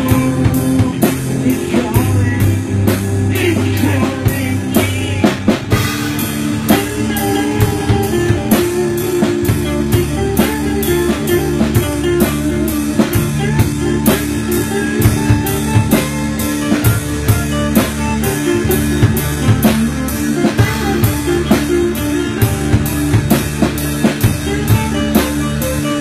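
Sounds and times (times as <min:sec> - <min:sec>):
drum kit beat: 0:00.0 - 0:26.0
sustained guitar and bass: 0:00.0 - 0:26.0.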